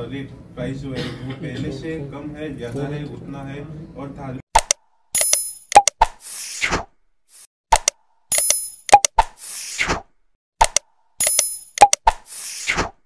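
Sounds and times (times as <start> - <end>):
sharp clicks: 4.6 - 6.1, 7.7 - 9.3, 10.6 - 12.2.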